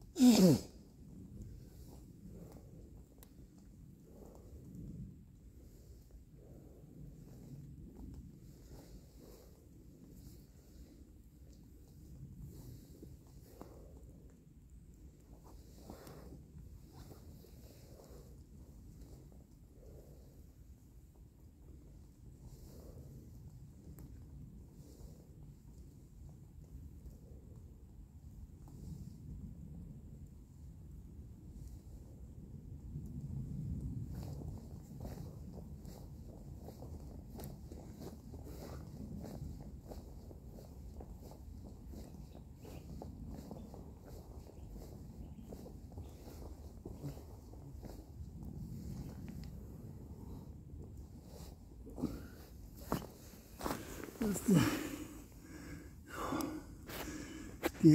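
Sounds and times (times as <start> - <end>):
low steady rumble: 0.0 - 57.9.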